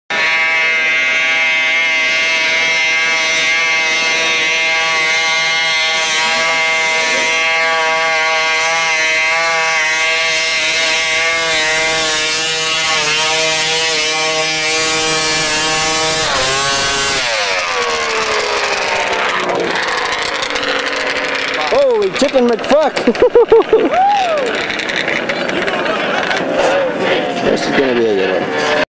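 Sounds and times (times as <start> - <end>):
snowmobile engine whining: 0.1 - 28.9.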